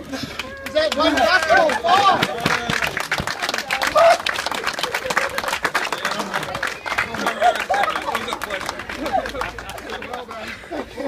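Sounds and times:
group clapping: 0.1s - 11.0s
laughter: 4.6s - 5.8s, 7.0s - 11.0s.

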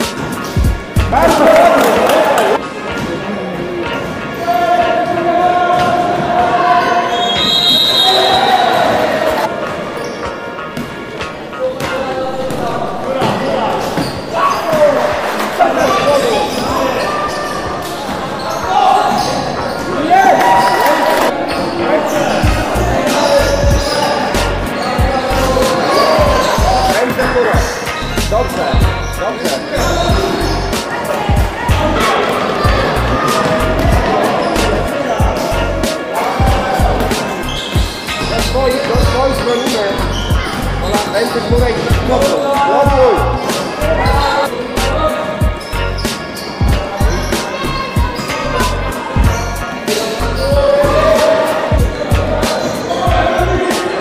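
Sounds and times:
children shouting in hall: 46.7s - 54.0s.

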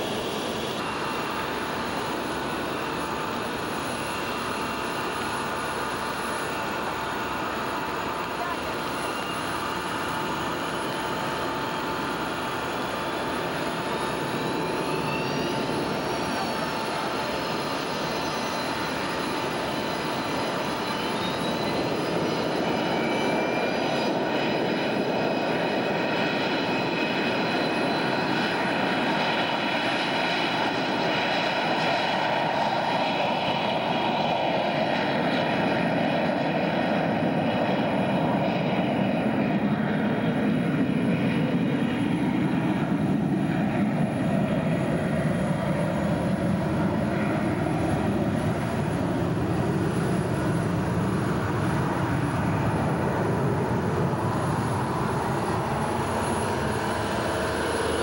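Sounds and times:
high jet whine: 0.0s - 58.0s
jet roar taking off: 11.5s - 58.0s.

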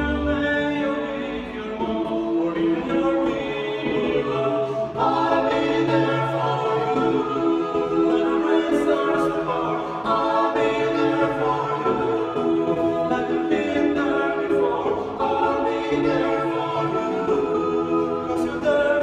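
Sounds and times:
male vocal quartet singing: 0.0s - 19.0s.

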